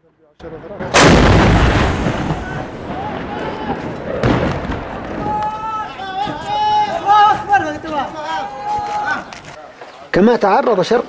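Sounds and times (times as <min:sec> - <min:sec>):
tank gun blast: 0:00.8 - 0:05.3.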